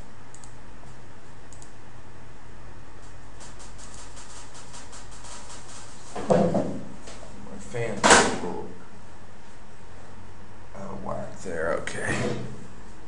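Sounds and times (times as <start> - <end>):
faint clicking: 0.3 - 0.6, 1.5 - 1.8.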